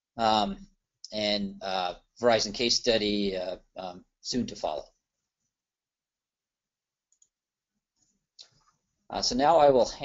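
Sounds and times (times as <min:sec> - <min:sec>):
faint clicks: 0:07.1 - 0:07.4.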